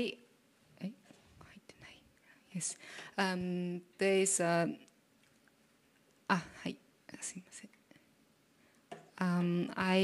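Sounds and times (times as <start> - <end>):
woman speaking: 0.0 - 0.2, 2.5 - 4.9, 6.3 - 7.7, 9.2 - 10.0
soft breathing: 1.3 - 3.2.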